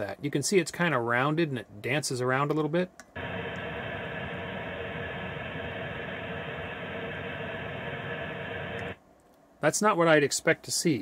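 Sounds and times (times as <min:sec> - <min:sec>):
faint hum: 0:03.0 - 0:10.7
radio static hiss: 0:03.2 - 0:09.0.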